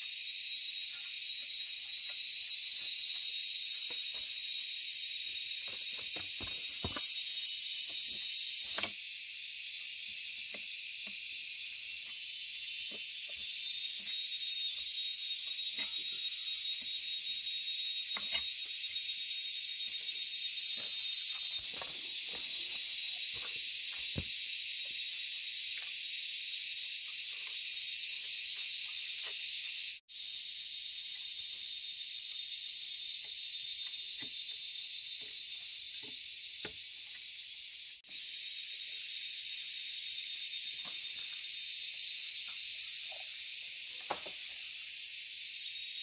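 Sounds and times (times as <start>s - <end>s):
high-pitched insect chorus: 0.0s - 46.0s.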